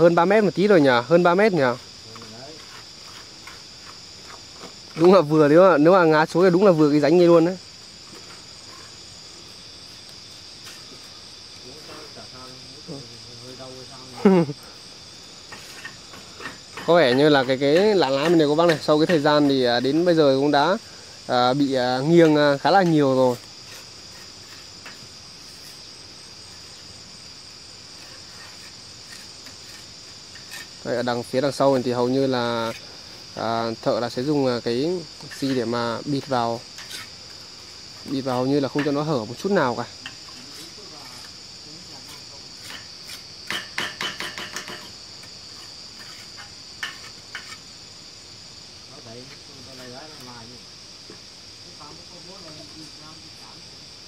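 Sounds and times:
faint outdoor background noise: 0.0 - 54.0
insects chirring: 0.0 - 54.0.

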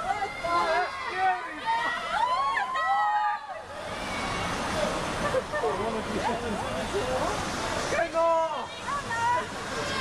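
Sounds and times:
excited voices shouting: 0.0 - 4.3.

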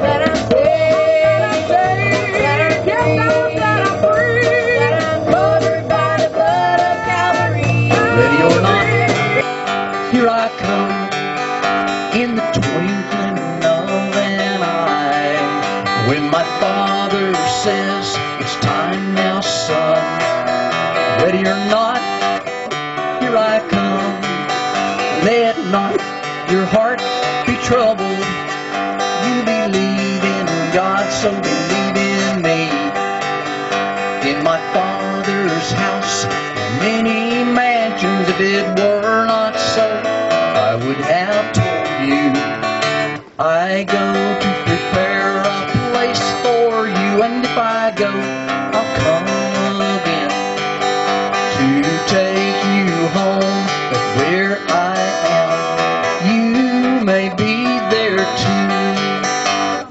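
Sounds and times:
acoustic guitar picked and strummed: 0.0 - 59.9
person singing with vibrato: 0.0 - 59.9.

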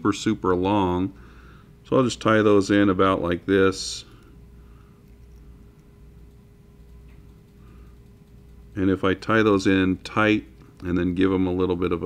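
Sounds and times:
steady low hum: 0.0 - 12.0
faint small ticks: 5.0 - 8.8.

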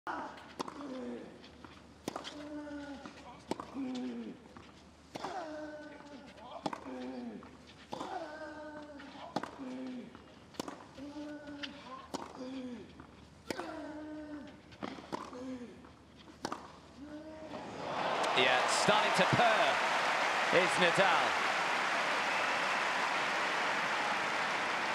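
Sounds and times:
crowd noise: 17.5 - 24.9.

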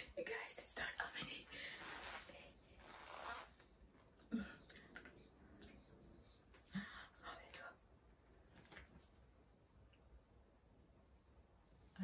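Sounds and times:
woman whispering: 0.0 - 1.6, 6.6 - 7.9.

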